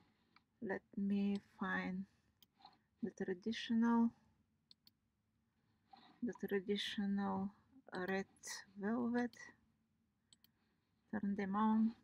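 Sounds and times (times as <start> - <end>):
computer mouse clicks: 4.7 - 5.0, 10.3 - 10.6.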